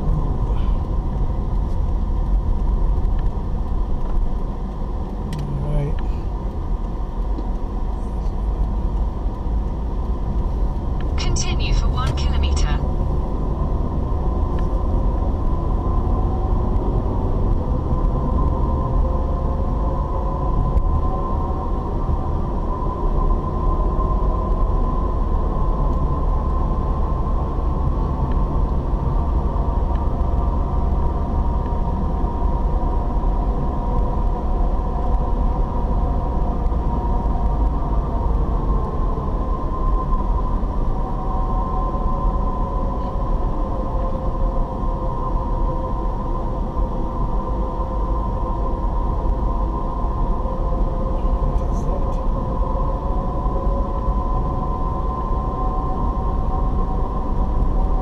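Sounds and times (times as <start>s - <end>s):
car road noise rumble: 0.0s - 58.0s.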